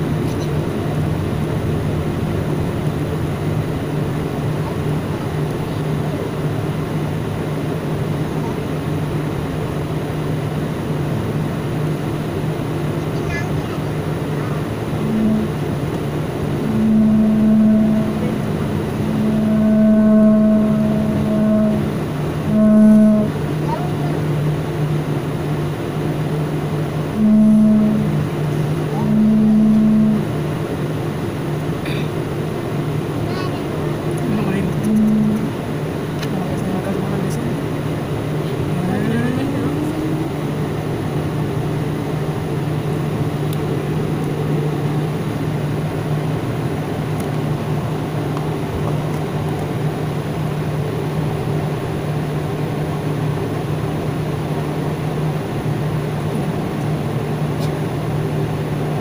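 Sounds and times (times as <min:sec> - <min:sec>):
jet engines idling in cabin: 0:00.0 - 0:59.0
short low tones: 0:14.3 - 0:24.3, 0:27.1 - 0:30.4, 0:33.3 - 0:35.6, 0:38.4 - 0:40.7.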